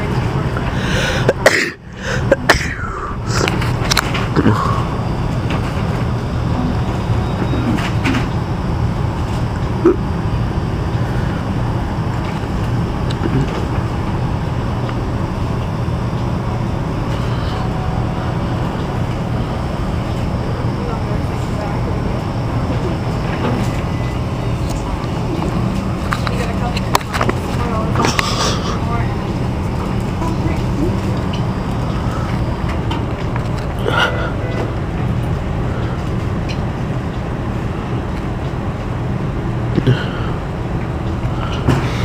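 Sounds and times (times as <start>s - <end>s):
store background rumble: 0.0s - 42.0s.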